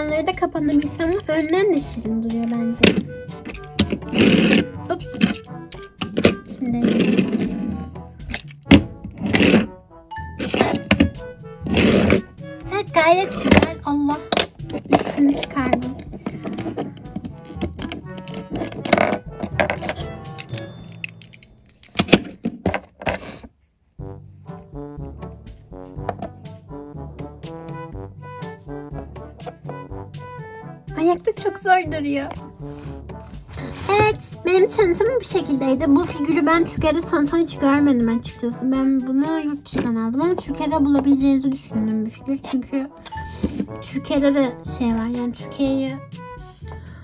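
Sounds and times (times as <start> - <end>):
background music: 0.0 - 47.0
plastic toy parts clicking: 14.3 - 22.4.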